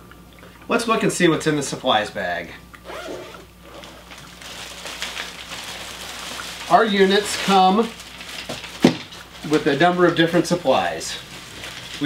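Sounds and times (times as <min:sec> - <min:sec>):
mesh bag and plastic rustling: 0:03.1 - 0:12.0.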